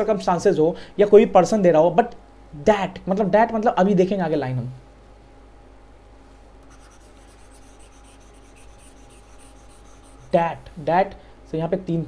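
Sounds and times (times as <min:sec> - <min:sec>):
low electrical hum: 0:00.0 - 0:12.0
stylus scratching on tablet: 0:06.6 - 0:10.8.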